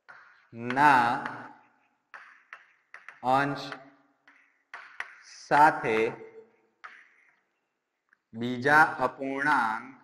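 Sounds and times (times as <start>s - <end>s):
chalk strokes on blackboard: 1.5s - 5.4s.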